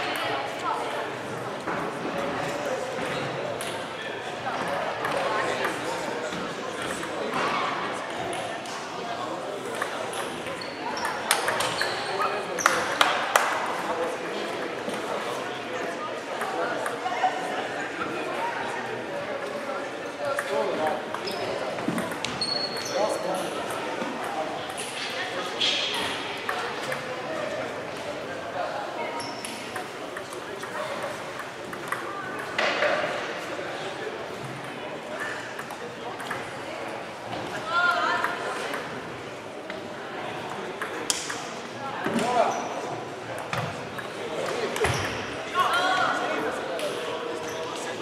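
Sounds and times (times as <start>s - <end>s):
murmur of voices: 0.0s - 48.0s
table tennis balls clicking: 29.4s - 32.7s.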